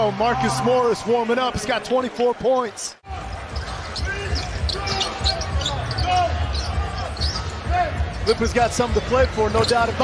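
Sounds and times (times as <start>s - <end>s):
sneakers squeaking: 3.2s - 10.0s.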